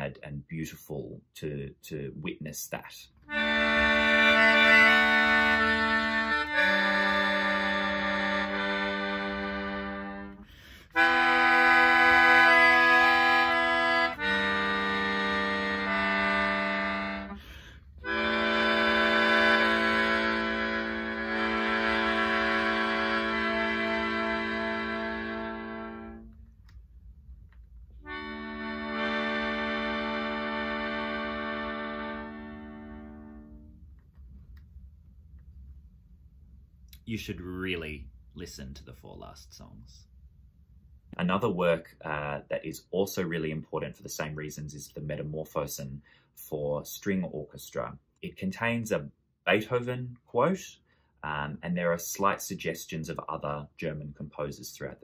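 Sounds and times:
melodica playing held chords: 3.2s - 26.4s, 28.0s - 33.8s.

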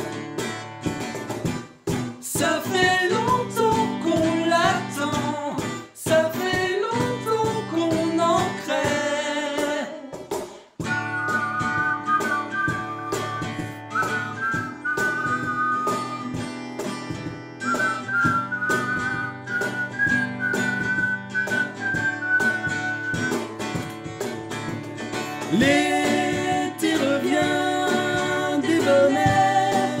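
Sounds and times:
cajon beats: 0.0s - 30.0s
strummed acoustic guitar: 0.0s - 30.0s
whistled melody in harmony: 10.8s - 16.4s, 17.6s - 23.6s.

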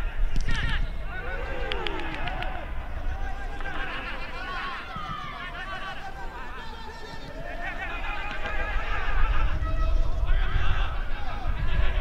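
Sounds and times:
footballers shouting: 0.0s - 12.0s.

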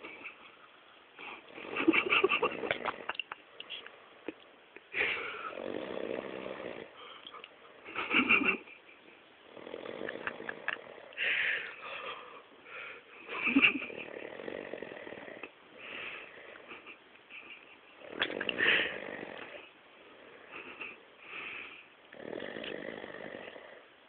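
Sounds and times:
man snoring: 5.2s - 7.0s, 9.5s - 11.4s, 13.6s - 15.5s, 18.0s - 20.5s, 22.1s - 23.9s.

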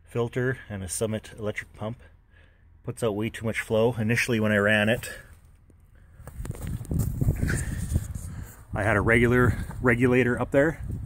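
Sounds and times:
footsteps: 4.9s - 8.6s.

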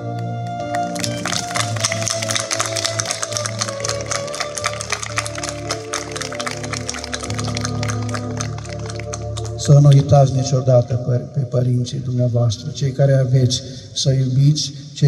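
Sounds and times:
audience clapping: 0.0s - 9.9s
keyboard playing held notes: 0.0s - 11.1s
violin: 0.0s - 11.5s.

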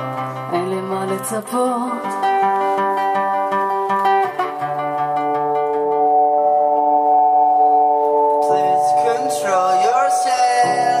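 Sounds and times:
live band music: 0.0s - 11.0s
picked guitar notes: 0.0s - 11.0s.

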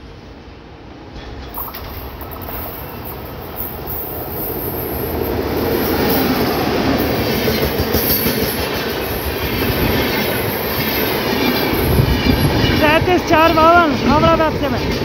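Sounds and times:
train passing at speed: 0.0s - 1.6s, 2.4s - 15.0s
wheels clattering on rails: 2.7s - 15.0s.

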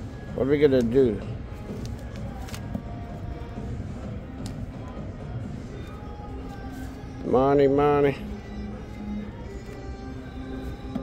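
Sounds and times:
faint musical tones: 0.0s - 11.0s.

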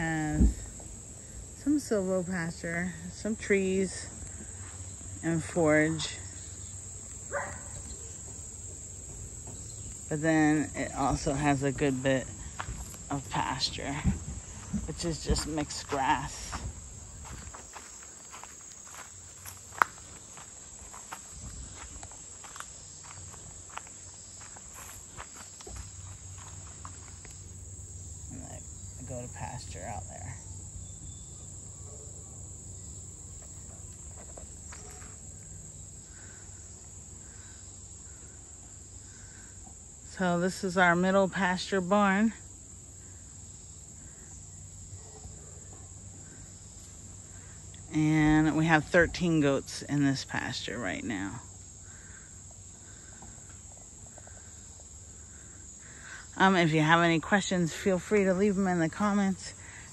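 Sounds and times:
high-pitched insect chorus: 0.0s - 59.9s
footsteps on dry leaves: 14.2s - 27.4s.

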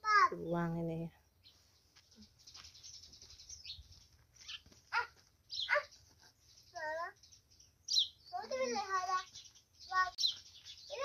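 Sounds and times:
birds chirping and calling: 0.0s - 11.0s.

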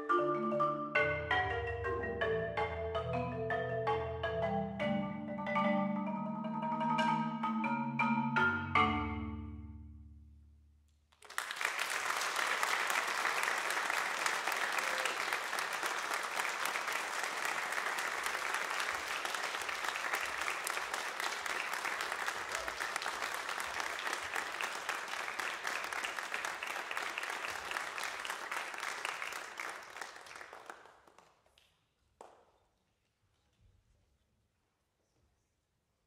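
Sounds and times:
audience applauding: 11.2s - 31.6s.

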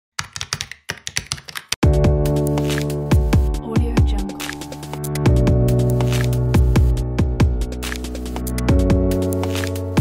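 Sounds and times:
keyboard typing: 0.2s - 1.8s
electronic music with kick drum: 1.8s - 10.0s.

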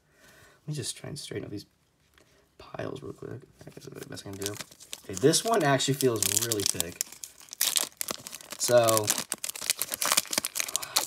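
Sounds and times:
foil wrapper tearing and crinkling: 4.2s - 11.0s.

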